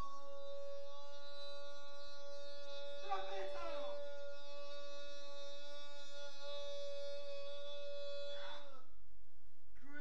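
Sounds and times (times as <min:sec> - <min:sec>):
person singing long note: 0:00.0 - 0:08.8.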